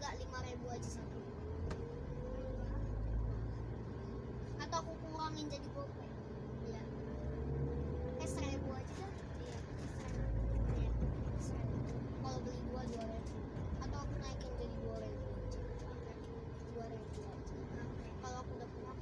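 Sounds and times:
road and engine rumble in car cabin: 0:00.0 - 0:19.0.

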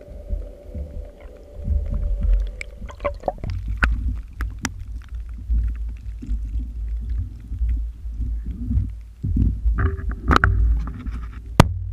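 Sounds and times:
rumbling through waterproof housing: 0:00.0 - 0:11.9.

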